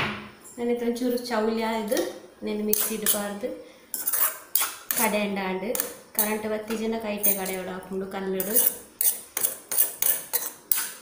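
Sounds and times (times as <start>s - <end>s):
metal spoon scraping a pan: 2.7s - 6.4s, 7.2s - 7.7s, 8.4s - 11.0s.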